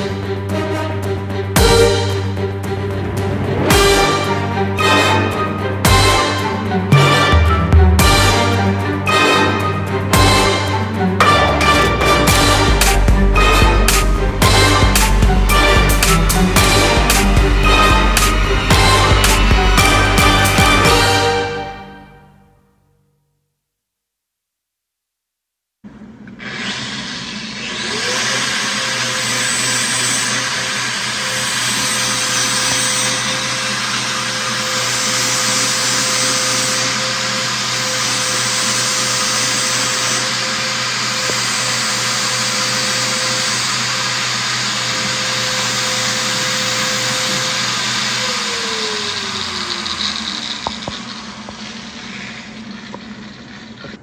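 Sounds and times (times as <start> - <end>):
electric motor machine whining: 0.0 - 22.1, 25.9 - 54.0
hum: 11.2 - 22.3.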